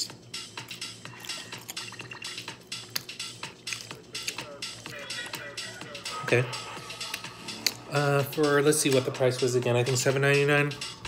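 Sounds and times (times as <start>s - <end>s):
faint electronic dance music: 0.0s - 11.0s.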